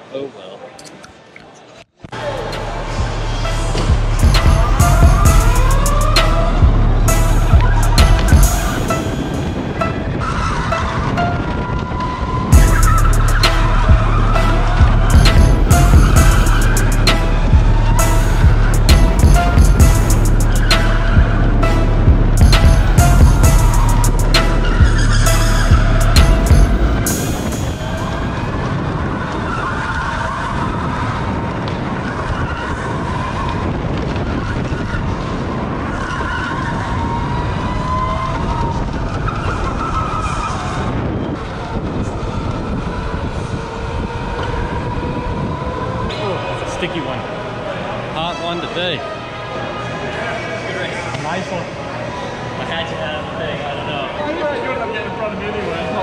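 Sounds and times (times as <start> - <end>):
tyre squeal: 10.1 - 21.4, 22.6 - 28.5
go-kart engine rumble: 27.0 - 48.2.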